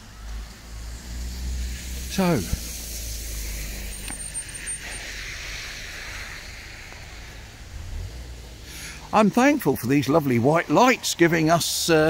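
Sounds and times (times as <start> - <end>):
tyre hiss on wet road: 0.0 - 11.0
traffic rumble: 0.0 - 12.0.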